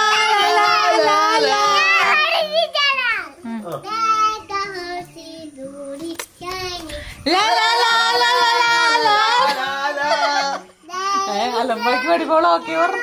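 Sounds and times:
child singing: 0:00.0 - 0:03.3, 0:03.9 - 0:07.1, 0:10.8 - 0:13.0.

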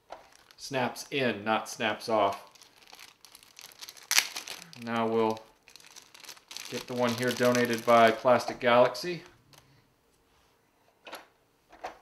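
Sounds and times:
plastic bag crinkling: 0:00.1 - 0:00.8, 0:02.1 - 0:09.7.

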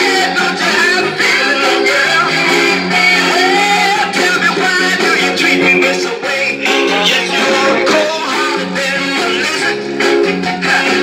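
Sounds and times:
soul record with guitar: 0:00.0 - 0:11.0.

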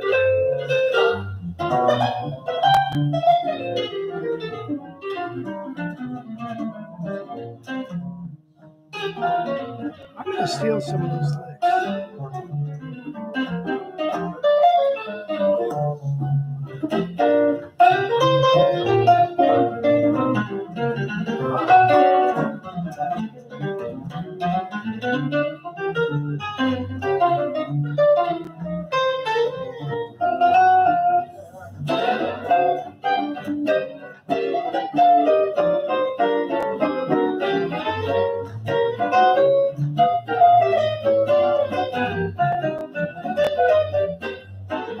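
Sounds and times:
electric guitars playing jazz: 0:00.0 - 0:45.0.

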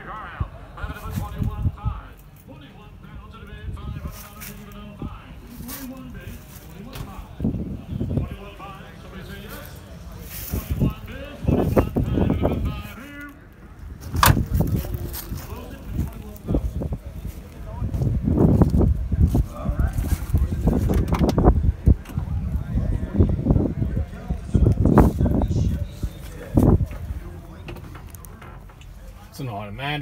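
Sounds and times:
low handling rumble: 0:00.0 - 0:29.8
people talking: 0:00.0 - 0:30.0.

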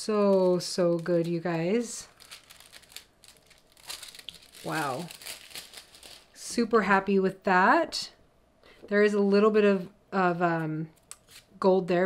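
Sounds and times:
foil sheet crinkling: 0:00.0 - 0:06.4.

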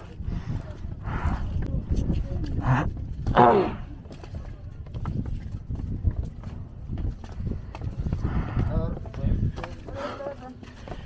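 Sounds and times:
footsteps on concrete stairs: 0:00.0 - 0:11.0
people talking: 0:08.6 - 0:10.7.

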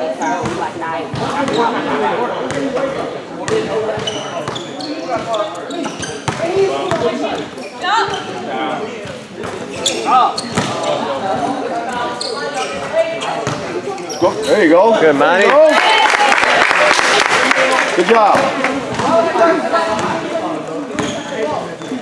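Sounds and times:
basketball bouncing on gym floor: 0:06.2 - 0:07.2, 0:10.5 - 0:10.8.

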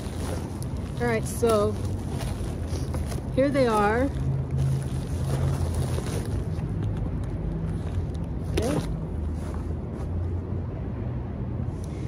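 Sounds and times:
plastic packaging rustling: 0:00.0 - 0:09.5.

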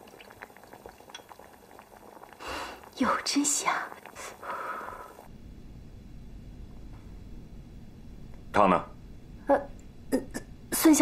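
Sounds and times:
faint low room hum: 0:00.0 - 0:11.0
woman sipping soup: 0:00.1 - 0:03.0.

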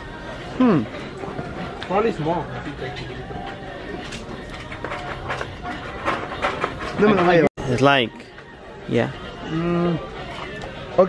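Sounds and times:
background chatter: 0:00.0 - 0:11.0
shop hum: 0:00.0 - 0:11.0.

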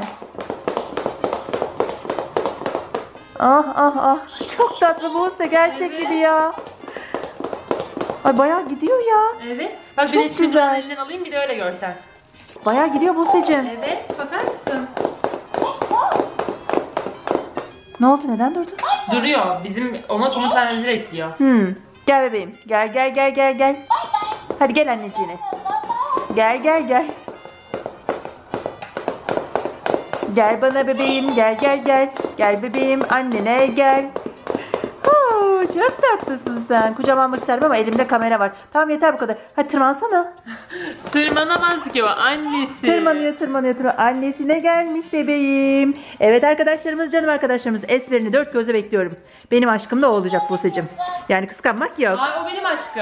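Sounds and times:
doll tapping on hard floor: 0:00.0 - 0:21.1, 0:22.2 - 0:40.0, 0:40.9 - 0:45.2, 0:46.5 - 0:53.0
toy motor: 0:04.1 - 0:06.8, 0:47.7 - 0:53.0.

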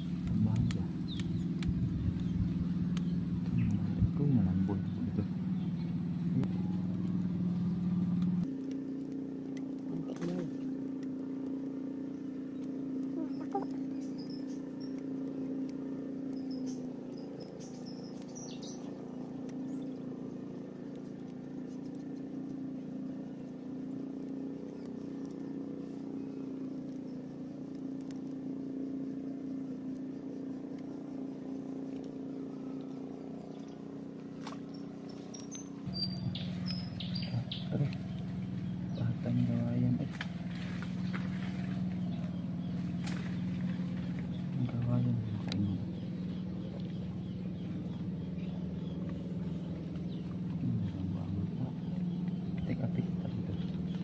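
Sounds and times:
distant motor humming: 0:00.0 - 0:54.0.

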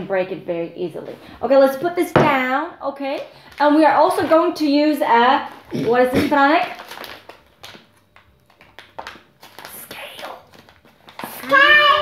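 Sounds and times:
people talking: 0:00.0 - 0:06.8, 0:11.2 - 0:12.0.

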